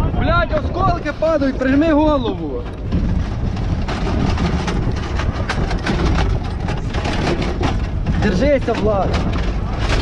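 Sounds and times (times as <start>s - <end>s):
heavy vehicle engine rumble: 0.0s - 10.0s
knocks and rattles: 0.5s - 10.0s.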